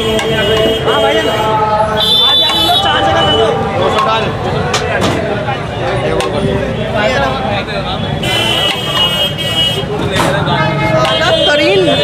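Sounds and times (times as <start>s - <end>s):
vehicle horn honking: 0.0s - 4.0s, 8.2s - 9.9s, 10.6s - 12.0s
background chatter: 0.0s - 12.0s.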